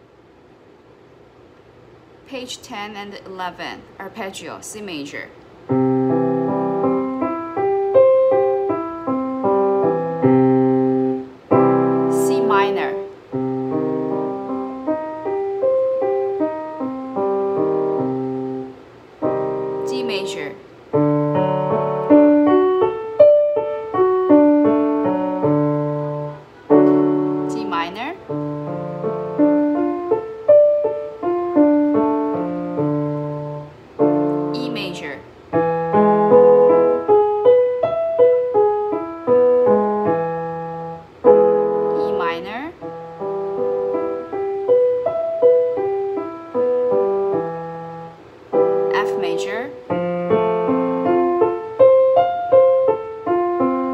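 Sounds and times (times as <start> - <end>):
digital piano arpeggios: 5.7 - 53.9.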